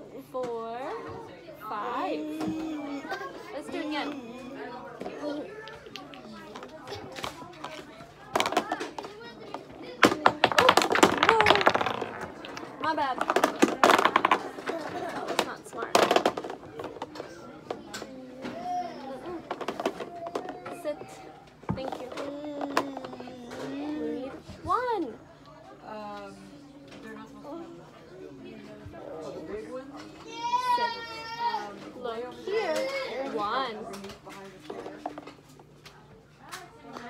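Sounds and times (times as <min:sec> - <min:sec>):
plastic cubes clicking and clattering: 0:05.0 - 0:21.0, 0:21.7 - 0:24.0.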